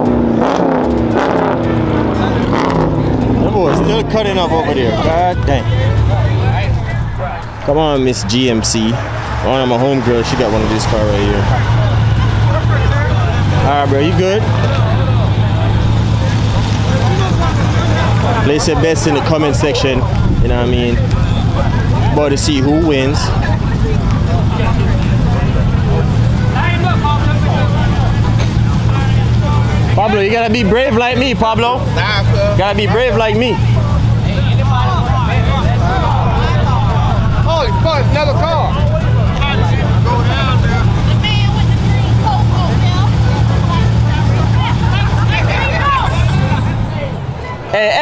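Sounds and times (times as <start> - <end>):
engines idling low rumble: 0.0 - 47.5
crowd chatter: 0.0 - 48.0
faint voices: 1.5 - 48.0.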